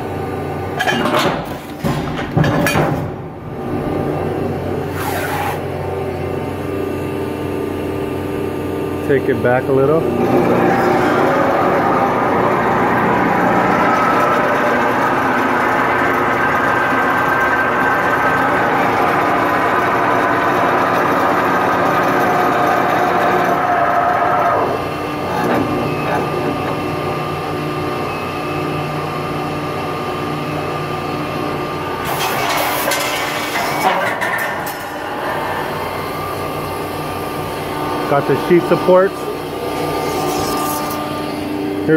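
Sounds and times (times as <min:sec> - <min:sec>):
hydraulic shear hum and whine: 0:00.0 - 0:41.9.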